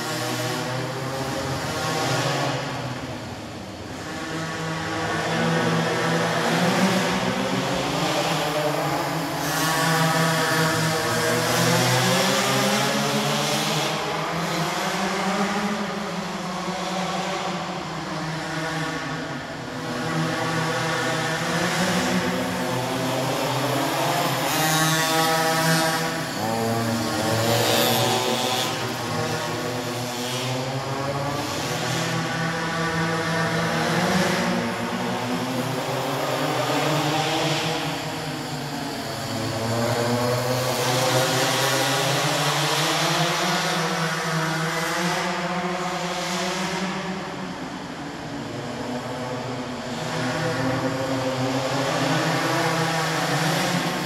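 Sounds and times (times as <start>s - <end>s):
small two-stroke engines revving: 0.0s - 54.0s.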